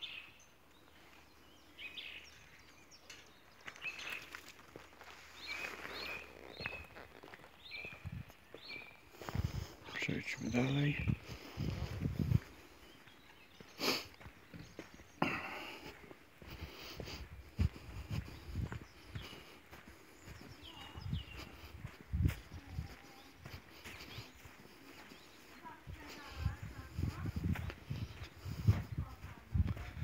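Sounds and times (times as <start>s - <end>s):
faint bird chirps: 0.0s - 9.4s, 18.2s - 26.4s
footsteps on grass: 3.5s - 30.0s.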